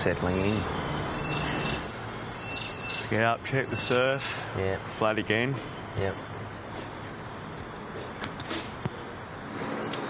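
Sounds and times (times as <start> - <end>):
birds chirping: 0.0 - 6.8.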